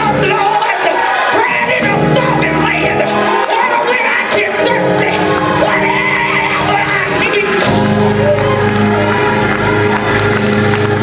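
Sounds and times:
church band playing gospel music: 0:00.0 - 0:11.0.

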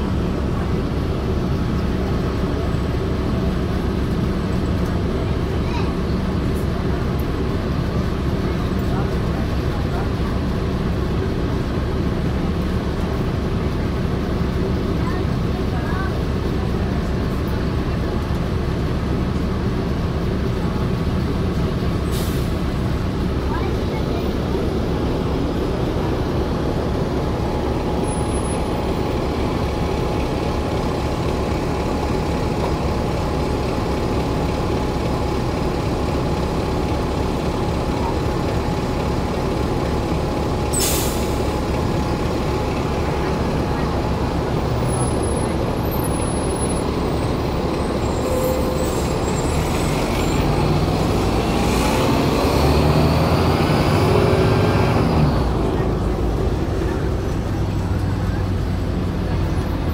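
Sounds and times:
bus diesel engine rumbling: 0:00.0 - 0:59.9.

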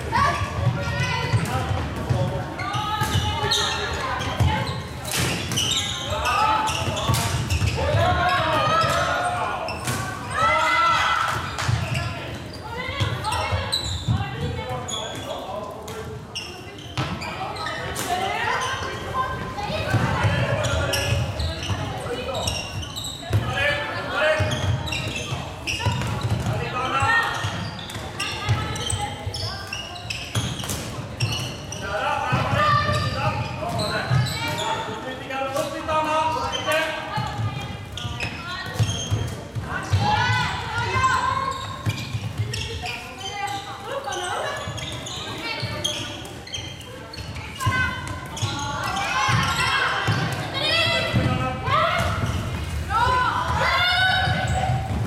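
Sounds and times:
players shouting: 0:48.6 - 0:55.0.

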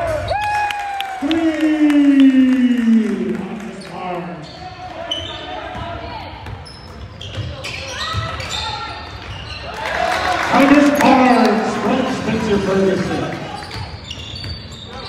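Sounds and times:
sneaker squeaks: 0:03.8 - 0:09.8, 0:13.4 - 0:15.0
crowd voices: 0:07.4 - 0:14.1.

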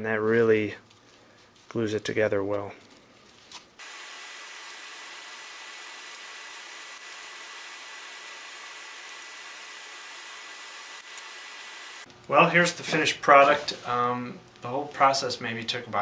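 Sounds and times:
steady hiss with faint whistle: 0:03.8 - 0:14.3.

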